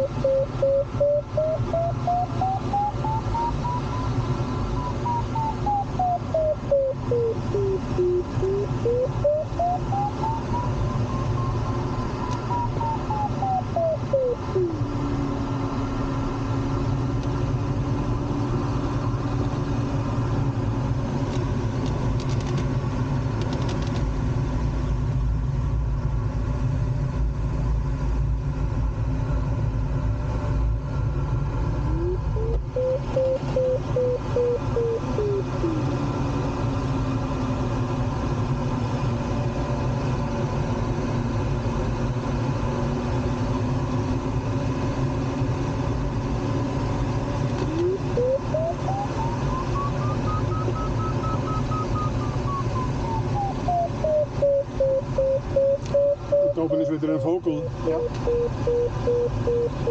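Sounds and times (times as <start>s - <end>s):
variometer tone and pulsing beeps: 0.0s - 15.0s, 31.9s - 36.1s, 47.6s - 57.0s, 57.8s - 59.9s
rush of airflow in cockpit: 0.0s - 59.9s.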